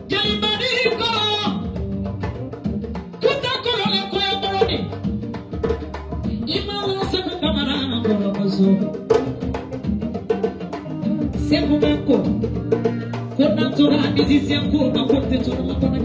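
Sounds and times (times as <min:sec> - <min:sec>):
hand drumming on djembe: 0:00.0 - 0:16.0.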